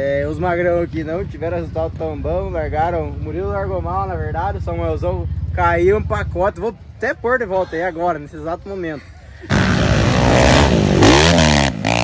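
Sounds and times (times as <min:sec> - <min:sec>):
dirt bike engines revving: 0:00.0 - 0:12.0.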